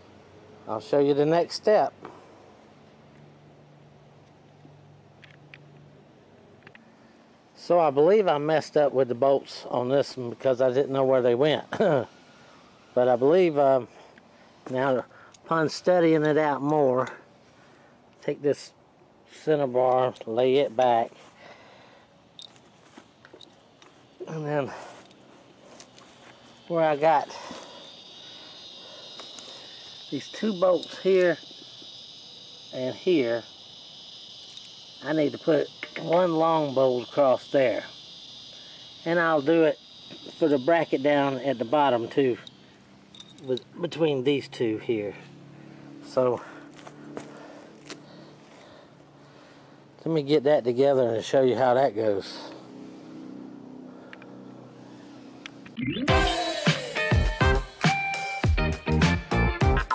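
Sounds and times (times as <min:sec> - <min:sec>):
low background hiss: 0:00.0 - 0:45.0.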